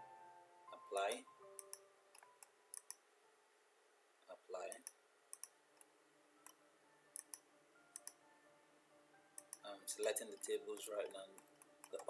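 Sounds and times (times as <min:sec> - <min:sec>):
computer mouse clicks: 0:01.6 - 0:03.0, 0:04.7 - 0:06.6, 0:07.2 - 0:08.2, 0:09.4 - 0:09.7, 0:11.3 - 0:12.0.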